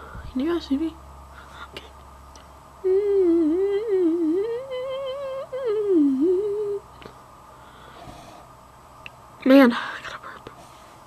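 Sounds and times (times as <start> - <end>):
girl humming a tune: 2.8 - 6.9.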